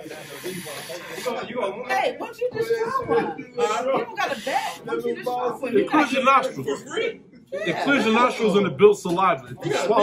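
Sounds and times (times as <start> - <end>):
man blowing nose into napkin: 0.0 - 1.4
men talking: 0.0 - 10.0.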